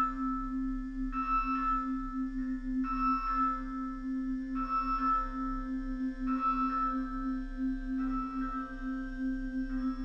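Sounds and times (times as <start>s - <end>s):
soft bell-like chords: 0.0s - 10.0s.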